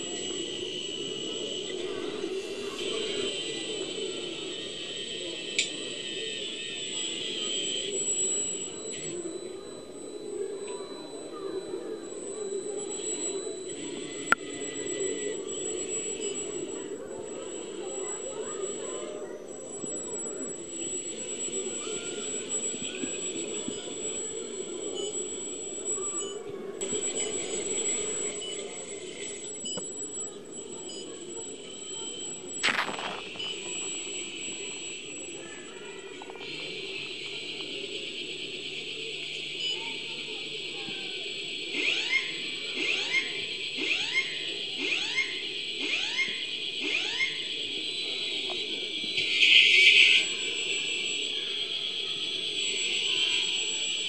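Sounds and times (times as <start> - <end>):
electric boat motor whine underwater: 0.0 - 54.0
falling chirps: 19.4 - 38.8.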